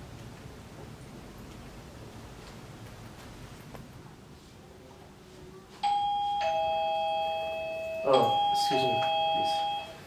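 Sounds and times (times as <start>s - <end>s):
electronic two-tone doorbell chime: 5.8s - 10.0s.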